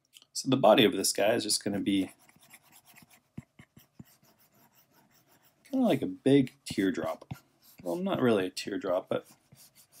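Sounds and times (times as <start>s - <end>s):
stylus scratching on glass screen: 1.7s - 10.0s.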